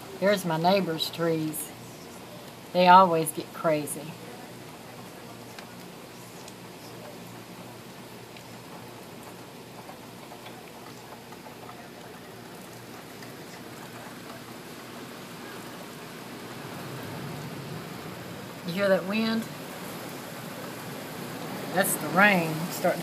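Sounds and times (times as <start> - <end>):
steady rain falling: 0.0 - 23.0
wind blowing through trees: 0.0 - 23.0.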